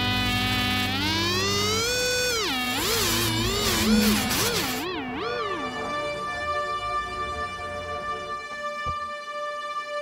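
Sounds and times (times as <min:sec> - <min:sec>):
distorted electric guitar: 0:00.0 - 0:09.0.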